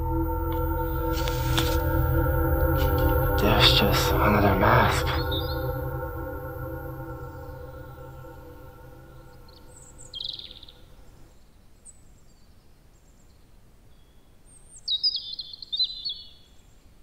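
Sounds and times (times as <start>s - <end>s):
ambient music tones: 0.0s - 11.3s
birds chirping: 0.6s - 10.9s.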